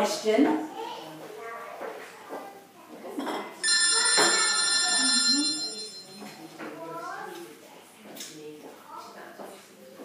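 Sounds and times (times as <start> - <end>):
telephone ringtone: 3.6 - 6.4.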